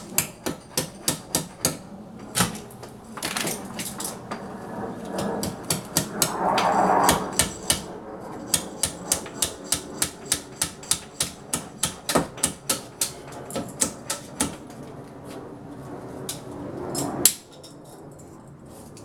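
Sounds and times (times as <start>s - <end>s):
hammer blows: 5.4s - 14.6s.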